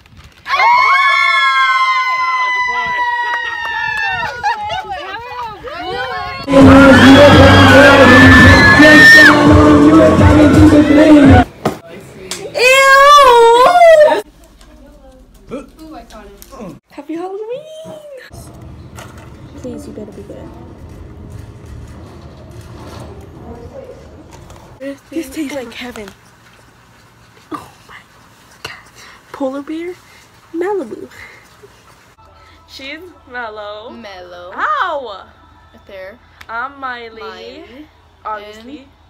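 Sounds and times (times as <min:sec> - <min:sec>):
people shrieking: 0:00.5 - 0:04.6, 0:05.7 - 0:11.4, 0:12.6 - 0:14.3.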